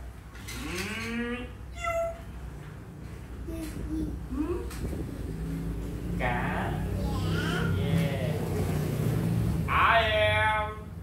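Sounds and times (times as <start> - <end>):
high-pitched child's voice: 1.8 - 2.3, 3.4 - 4.7, 6.9 - 8.0.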